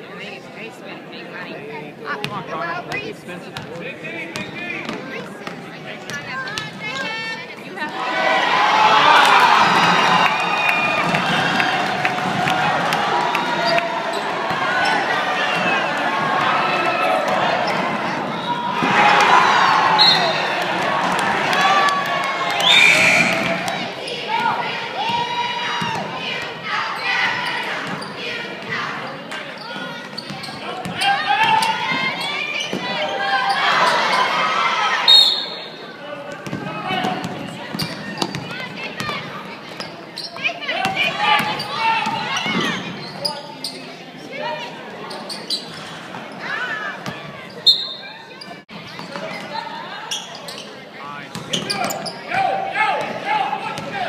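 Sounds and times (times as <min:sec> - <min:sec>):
people talking and shouting: 0:00.0 - 0:54.0.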